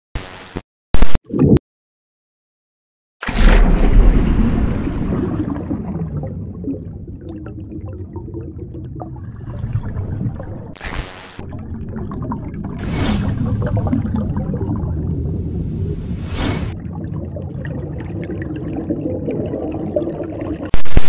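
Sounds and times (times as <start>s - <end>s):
heavy splash with deep boom: 3.2s - 7.2s
bubbling underwater rumble: 3.6s - 10.8s, 11.4s - 20.7s.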